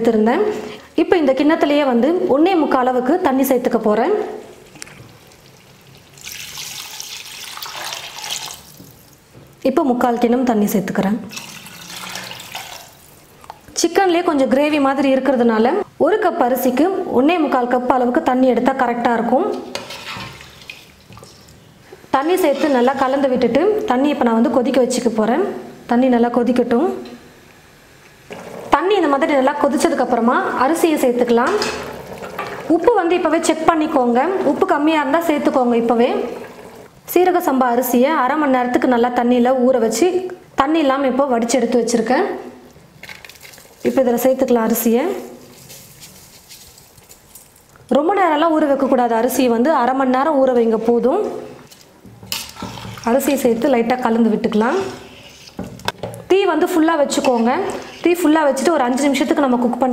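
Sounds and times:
woman speaking: 0.0s - 4.5s, 9.6s - 11.3s, 13.8s - 19.6s, 22.2s - 27.1s, 28.7s - 31.7s, 32.7s - 36.4s, 37.1s - 42.6s, 43.8s - 45.4s, 47.9s - 51.5s, 53.0s - 55.1s, 56.3s - 59.9s
ladle stirring gravy in pot: 51.7s - 55.9s, 56.7s - 58.6s.

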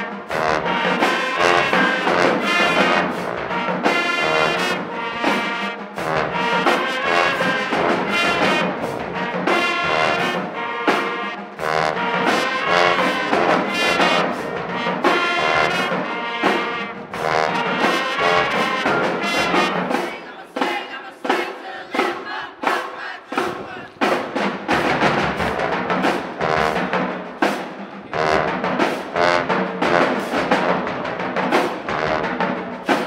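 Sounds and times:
low brass: 0.0s - 20.2s, 23.4s - 33.0s
trumpets: 0.0s - 33.0s.

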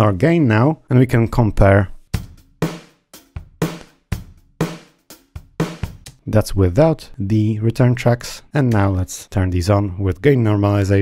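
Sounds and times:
electronic drum loop: 2.2s - 6.3s.

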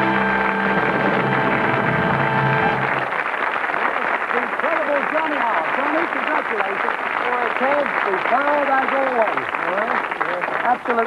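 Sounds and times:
band playing sustained chords: 0.0s - 3.0s.

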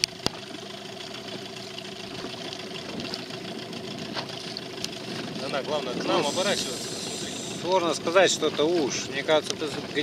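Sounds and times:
motorboat engine idling: 0.0s - 10.0s.

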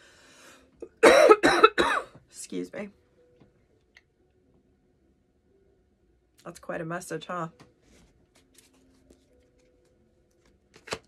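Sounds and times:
woman coughing: 0.8s - 2.2s.

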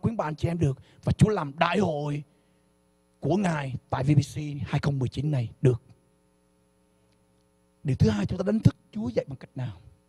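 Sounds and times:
man's amplified speech: 0.0s - 2.2s, 3.2s - 5.8s, 7.9s - 9.9s
electrical hum: 0.0s - 10.0s.

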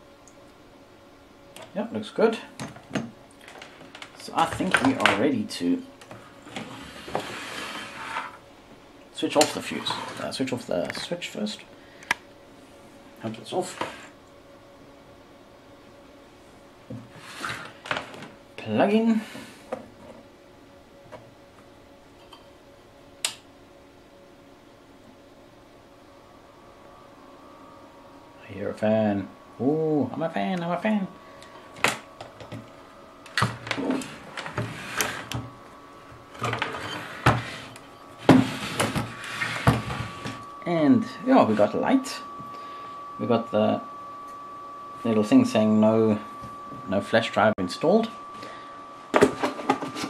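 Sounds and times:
cooling fan humming: 0.0s - 50.0s.

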